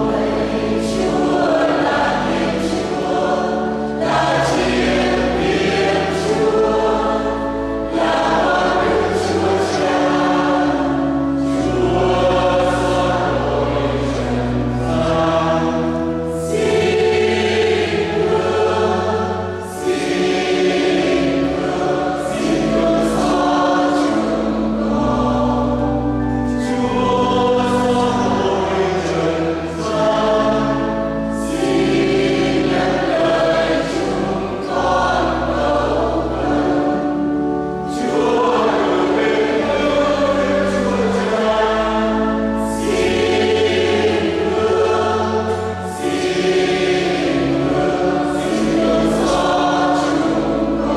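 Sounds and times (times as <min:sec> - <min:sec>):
church choir singing a hymn: 0:00.0 - 0:50.9
low sustained accompaniment: 0:00.0 - 0:50.9.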